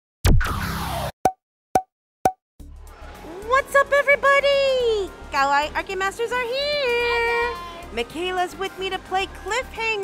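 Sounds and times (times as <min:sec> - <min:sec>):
cartoon pop with falling pitch: 0:01.2 - 0:02.4.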